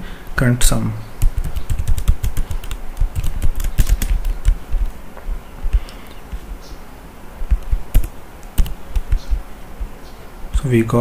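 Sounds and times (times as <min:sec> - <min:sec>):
fast typing on keyboard: 0:01.2 - 0:04.9, 0:07.5 - 0:09.9.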